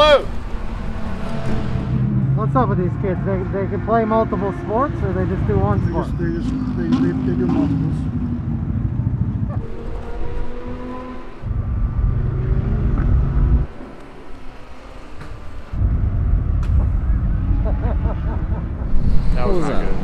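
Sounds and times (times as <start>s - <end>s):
wind on microphone: 15.8s - 20.0s.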